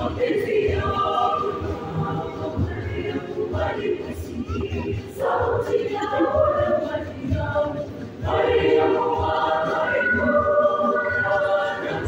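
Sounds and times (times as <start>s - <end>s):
youth choir singing: 0.0s - 12.0s.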